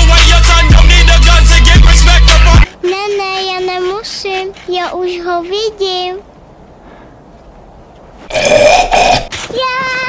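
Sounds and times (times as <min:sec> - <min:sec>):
man's rough vocal blast: 0:08.3 - 0:09.3.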